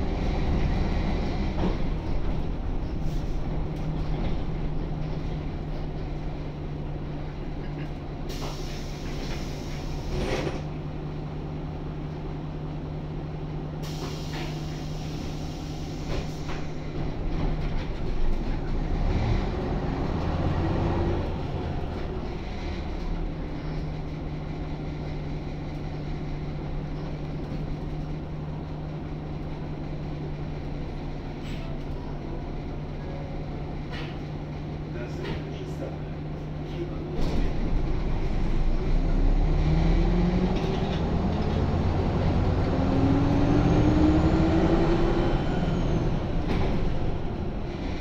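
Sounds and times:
bus body rattling: 0.0s - 11.0s, 13.8s - 19.0s, 33.6s - 39.1s, 40.2s - 43.1s, 46.0s - 48.0s
bus engine hum: 0.0s - 48.0s.

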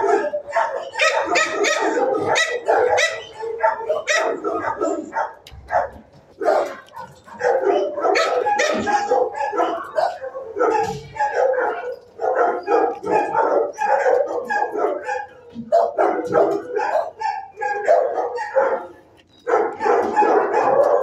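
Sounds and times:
dogs barking and yipping: 0.0s - 21.0s.

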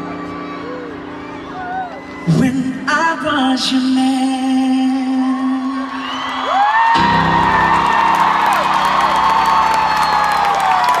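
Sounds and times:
crowd cheering and screaming: 0.0s - 3.9s, 4.9s - 11.0s.

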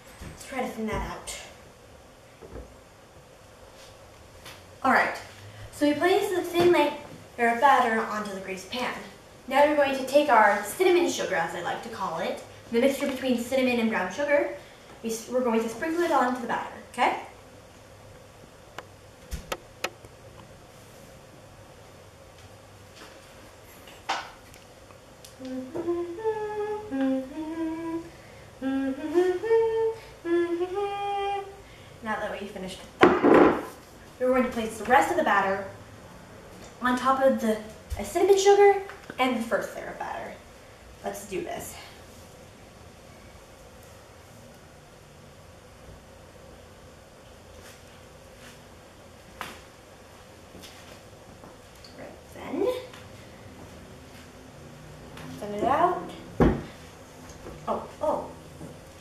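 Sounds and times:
faint steady hum: 0.0s - 59.0s
girl humming a tune: 25.4s - 31.6s.

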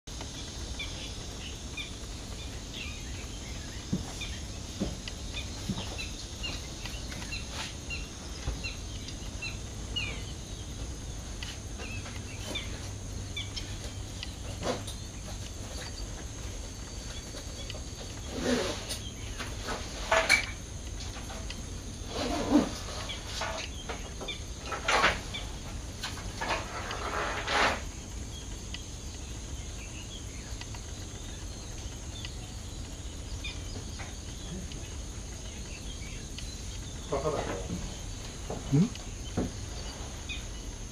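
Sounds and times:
small birds chirping: 0.1s - 40.9s.

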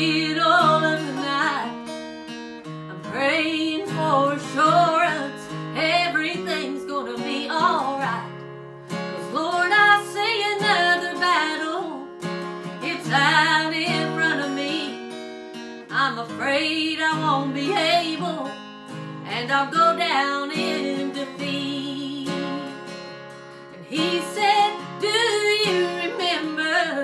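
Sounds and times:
woman singing gospel song: 0.0s - 1.8s, 2.9s - 8.3s, 9.2s - 12.1s, 12.8s - 15.0s, 15.9s - 18.5s, 19.2s - 22.7s, 23.8s - 27.0s
acoustic guitar: 0.0s - 27.0s.

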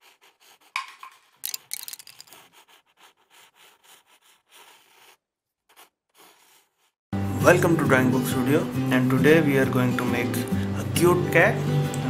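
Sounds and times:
faint scratching and rubbing: 1.9s - 7.0s.

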